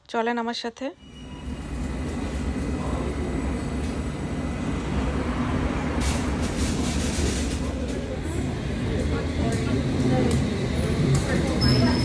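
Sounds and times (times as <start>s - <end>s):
train rumble: 1.1s - 12.0s.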